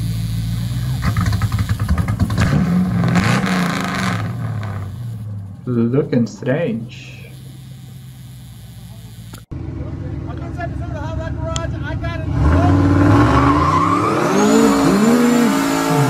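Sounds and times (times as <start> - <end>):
engine revving hard: 0.0 - 5.3, 12.2 - 16.0
engine idling: 0.0 - 12.4
tyres spinning and squealing: 12.3 - 16.0.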